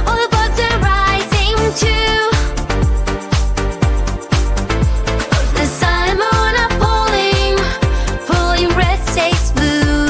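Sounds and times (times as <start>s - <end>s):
person singing pop song: 0.0s - 2.9s, 5.0s - 10.0s
deep kick drum beat: 0.0s - 10.0s.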